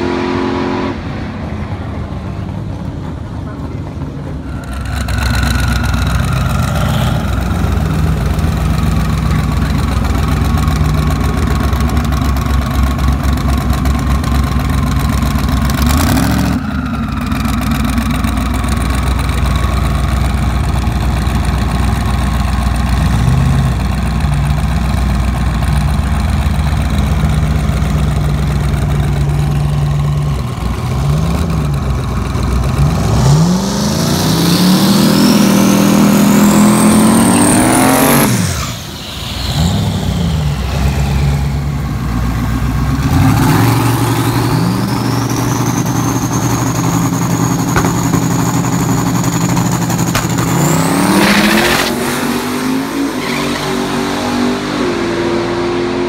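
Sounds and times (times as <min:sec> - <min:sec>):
car engine idling and revving: 0:00.0 - 0:56.0
car launching: 0:43.0 - 0:53.8.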